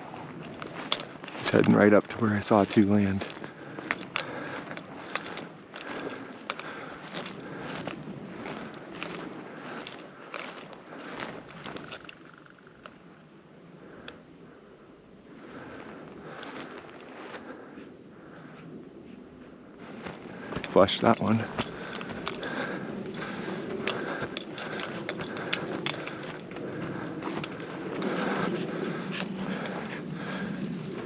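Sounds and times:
footsteps through dry grass: 0:00.0 - 0:13.0, 0:15.3 - 0:31.0.

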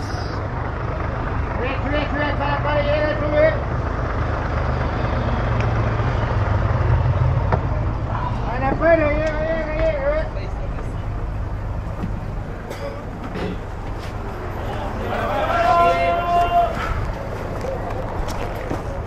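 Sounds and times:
bus engine rumbling: 0:00.0 - 0:19.0.

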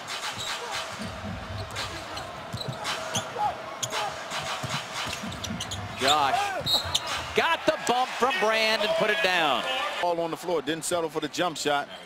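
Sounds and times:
murmur of arena crowd: 0:00.0 - 0:12.0
sneaker squeaks: 0:00.4 - 0:07.2.

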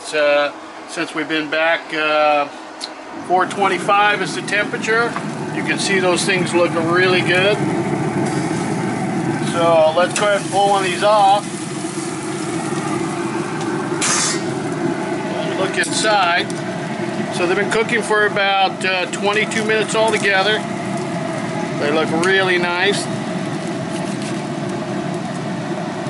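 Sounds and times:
grill fan humming: 0:00.0 - 0:26.0.

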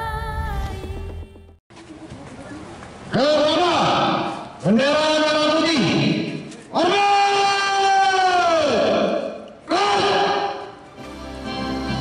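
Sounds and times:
man shouting command: 0:03.2 - 0:06.0, 0:06.7 - 0:10.8.

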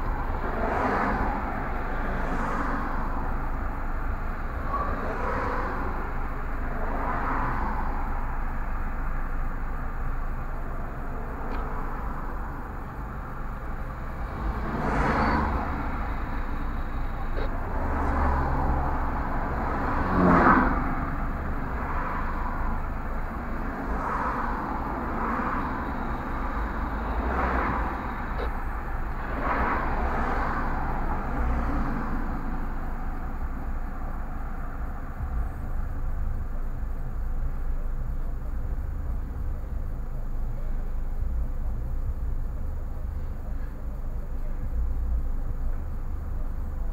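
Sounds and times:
steady low rumble: 0:00.0 - 0:46.9
vehicles passing by: 0:00.0 - 0:46.9.

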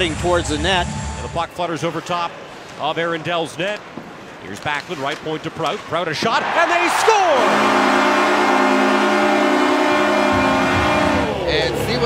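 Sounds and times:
crowd cheering: 0:06.2 - 0:12.0
arena goal horn chord: 0:07.4 - 0:11.4.

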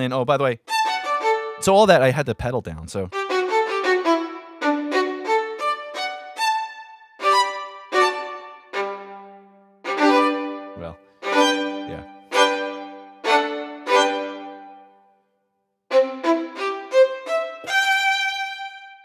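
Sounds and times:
solo violin notes: 0:00.6 - 0:02.0, 0:03.1 - 0:15.0, 0:15.9 - 0:19.0.

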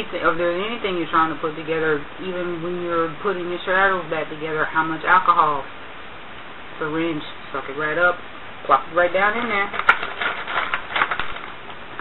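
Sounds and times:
small objects rummaged through: 0:09.4 - 0:12.0.

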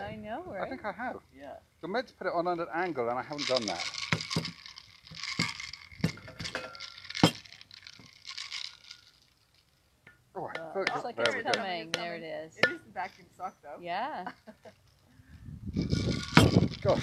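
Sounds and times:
voices: 0:00.0 - 0:03.9, 0:10.4 - 0:14.7
cocktail shaker knocks and clinks: 0:03.4 - 0:09.0.

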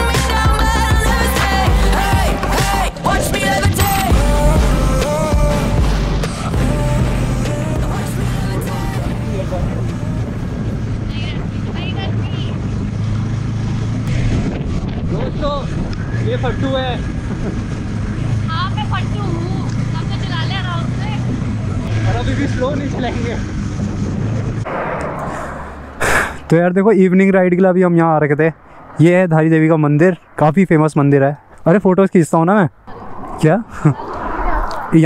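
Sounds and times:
background music: 0:00.0 - 0:11.1
motorcycle engine cruising: 0:00.7 - 0:24.7
wind rushing over microphone: 0:08.2 - 0:22.2, 0:22.8 - 0:27.0, 0:32.8 - 0:35.0.

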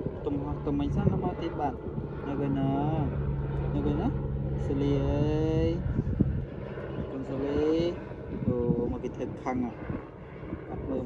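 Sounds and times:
engine hum: 0:00.0 - 0:11.0.

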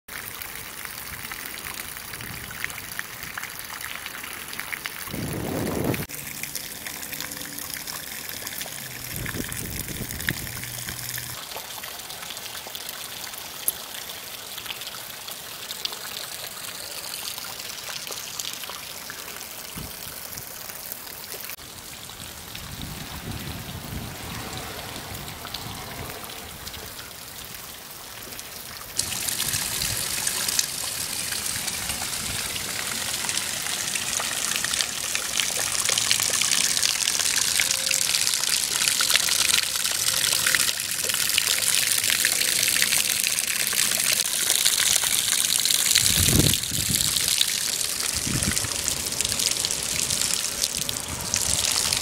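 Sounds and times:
steady hiss of rain: 0:00.1 - 0:52.0
water pouring off a roof: 0:00.1 - 0:52.0
water splashing on pavement: 0:00.1 - 0:52.0.

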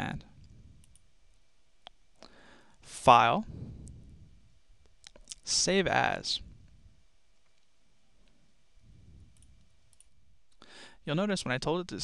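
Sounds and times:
computer mouse clicks: 0:00.8 - 0:01.1, 0:09.3 - 0:10.1
short breath: 0:02.2 - 0:02.8, 0:10.6 - 0:11.0.

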